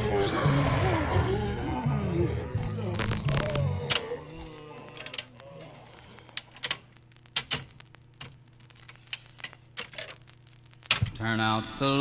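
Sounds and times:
low steady hum: 2.5 - 12.0
loud burst of noise: 3.0 - 3.6.

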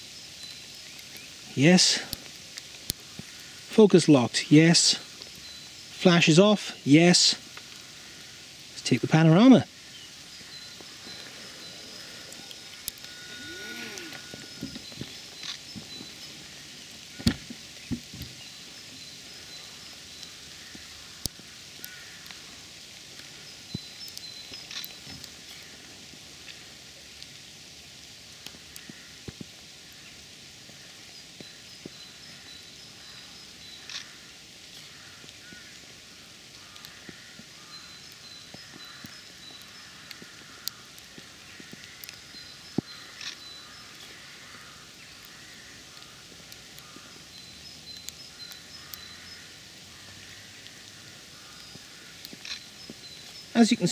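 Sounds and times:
distant birds chirping: 0.0 - 26.8, 29.8 - 53.9
light rain hiss: 0.0 - 53.9
sharp clicks: 10.4 - 16.1, 23.2 - 25.3, 38.1 - 44.2, 51.6 - 53.8.

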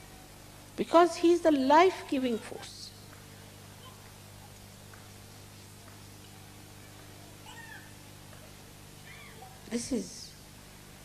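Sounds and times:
low electrical hum: 0.0 - 11.0
faint pitched cry: 7.4 - 8.0, 9.0 - 9.6.

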